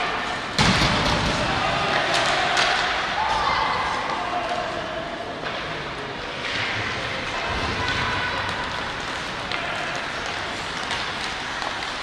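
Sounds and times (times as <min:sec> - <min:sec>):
skates scraping ice: 0:05.5 - 0:12.0
stick hitting puck: 0:07.6 - 0:12.0.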